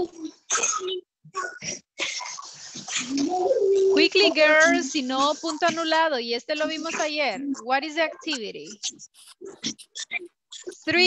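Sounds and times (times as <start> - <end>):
indistinct voices: 2.8 - 11.0.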